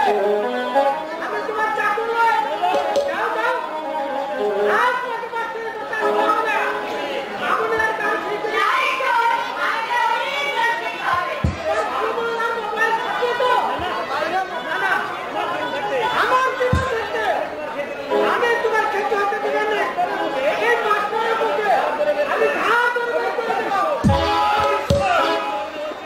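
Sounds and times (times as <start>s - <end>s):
actors speaking: 0.0s - 26.0s
dull low thump: 11.4s - 11.9s, 16.7s - 17.2s, 24.0s - 25.2s.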